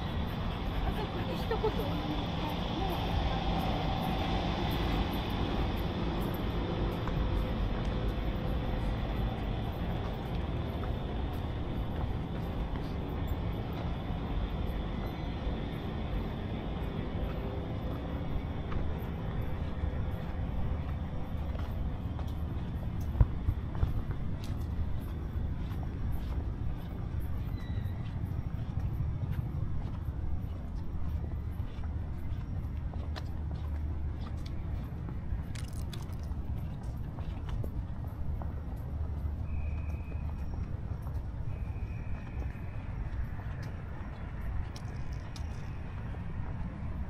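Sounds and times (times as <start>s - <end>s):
faint voices of passers-by: 0.0s - 35.6s
distant traffic hum: 0.0s - 47.0s.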